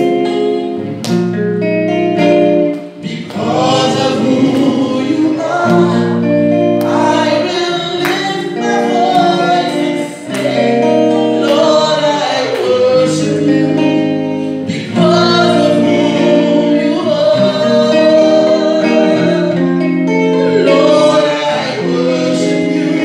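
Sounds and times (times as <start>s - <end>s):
instrumental accompaniment: 0.0s - 23.0s
woman singing gospel: 3.0s - 23.0s.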